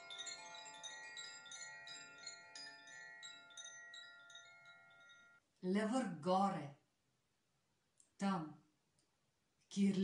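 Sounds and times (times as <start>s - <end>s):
wooden tube chimes ringing: 0.0s - 5.4s.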